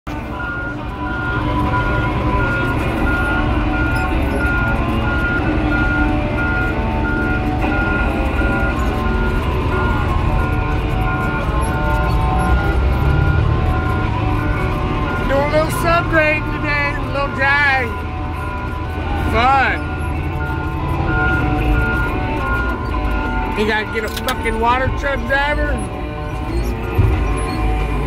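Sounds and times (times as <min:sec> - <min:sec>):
diesel engine running: 0:00.1 - 0:28.0.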